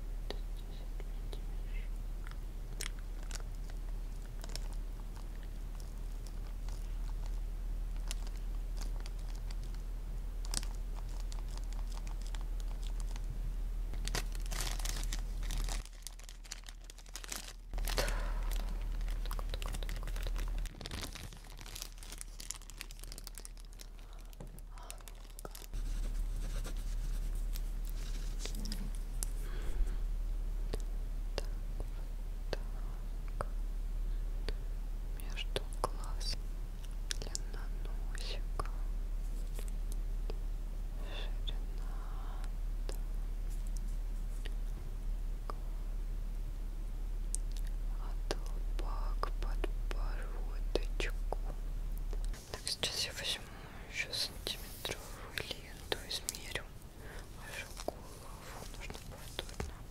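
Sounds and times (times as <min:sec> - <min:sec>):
plastic bag crinkling: 0:02.7 - 0:09.8, 0:10.4 - 0:13.3, 0:14.0 - 0:29.4, 0:54.1 - 0:59.9.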